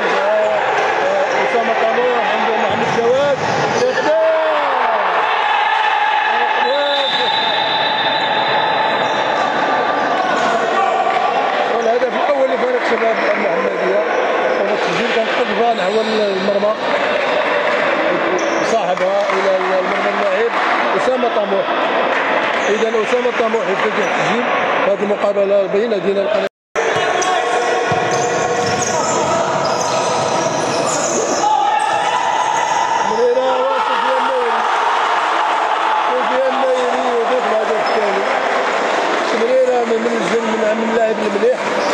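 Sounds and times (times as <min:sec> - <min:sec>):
players' voices echoing: 0:00.0 - 0:41.9.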